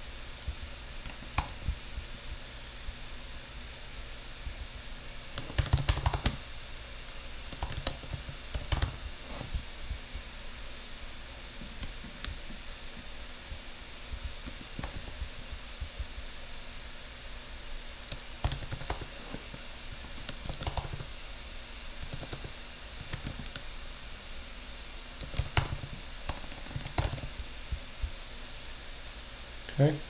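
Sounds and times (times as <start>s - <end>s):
steady hiss: 0.0s - 30.0s.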